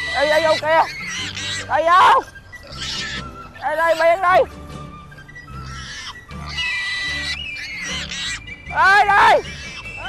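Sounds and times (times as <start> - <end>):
piglets squealing: 0.0 - 4.6, 5.2 - 10.0
background music: 0.0 - 10.0.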